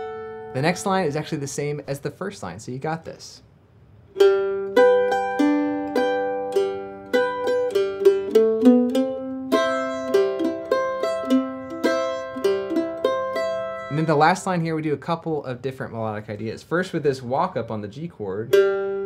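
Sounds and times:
mandolin strumming bass and chords: 0.0s - 2.5s, 3.8s - 19.0s.

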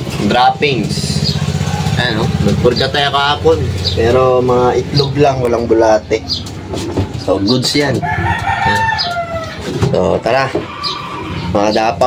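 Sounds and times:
rooster crowing: 7.9s - 10.0s.

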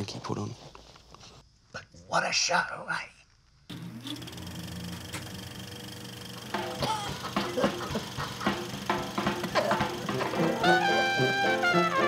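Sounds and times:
film projector whirring and clattering: 3.7s - 12.0s
music: 6.6s - 12.0s.

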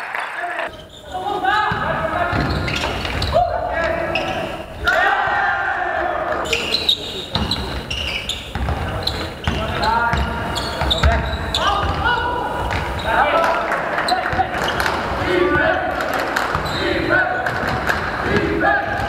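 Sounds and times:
players calling and shouting: 0.0s - 19.0s
basketball bouncing on hardwood floor: 8.5s - 12.0s.

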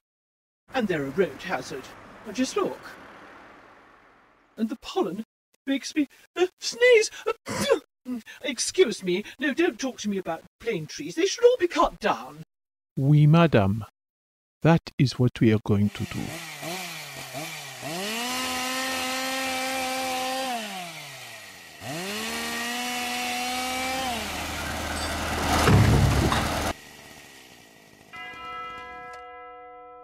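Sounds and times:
chainsaw cutting wood: 16.0s - 28.5s
loud low thud: 25.5s - 26.7s.

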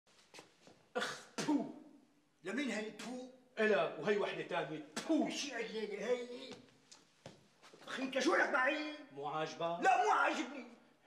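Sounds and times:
man coughing: 1.0s - 1.7s.

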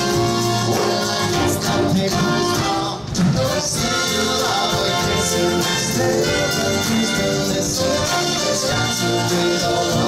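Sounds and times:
big band playing pop love song: 0.0s - 10.0s.

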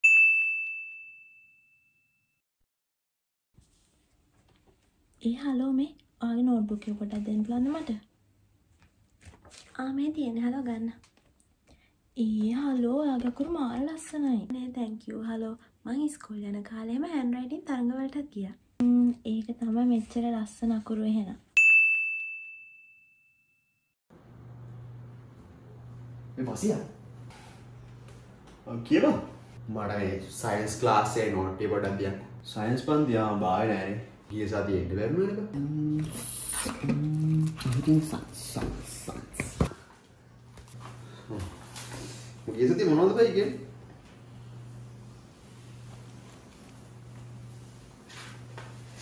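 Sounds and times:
bell-like ding: 0.0s - 2.4s, 21.6s - 23.9s.

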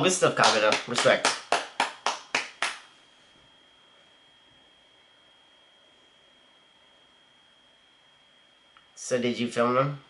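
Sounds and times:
hands clapping: 0.3s - 2.9s.

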